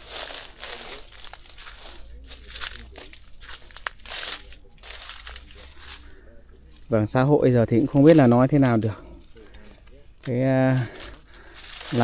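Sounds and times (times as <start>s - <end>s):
branches snapping: 0.0s - 6.2s, 7.9s - 12.0s
leaves rustling and crackling: 0.0s - 12.0s.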